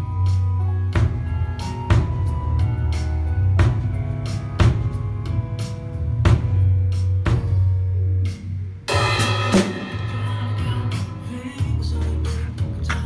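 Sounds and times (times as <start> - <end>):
acoustic drum kit playing: 0.0 - 13.0
recorded song with bass line: 0.0 - 13.0
cymbal crash: 8.9 - 11.7.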